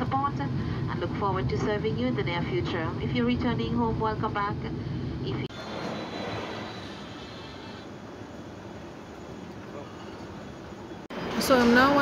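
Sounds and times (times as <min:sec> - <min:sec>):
escalator mechanical hum: 0:00.0 - 0:12.0
faint high whine: 0:05.2 - 0:11.7.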